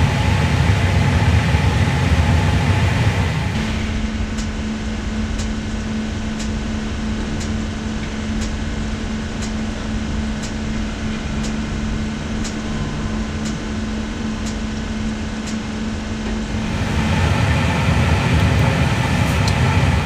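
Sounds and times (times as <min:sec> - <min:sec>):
loud rushing noise: 0:00.0 - 0:20.0
steady hum with low tone: 0:00.0 - 0:20.0.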